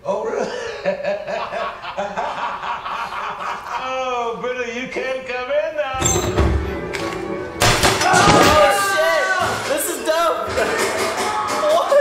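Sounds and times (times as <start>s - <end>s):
people laughing: 0.2s - 4.4s.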